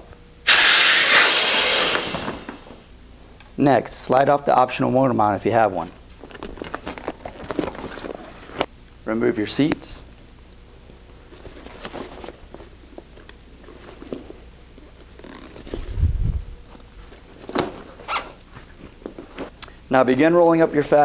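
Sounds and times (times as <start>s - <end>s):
rustling and clicking straps: 6.2s - 8.7s, 11.3s - 16.0s.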